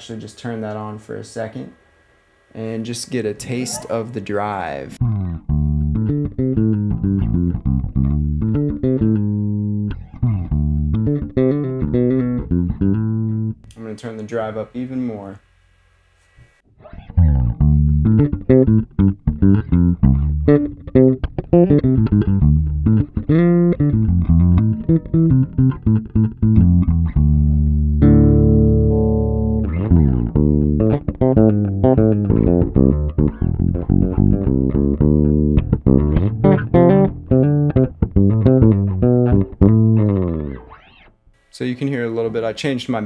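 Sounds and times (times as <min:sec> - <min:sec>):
overdriven electric bass notes: 0:01.6 - 0:13.8, 0:16.4 - 0:41.4.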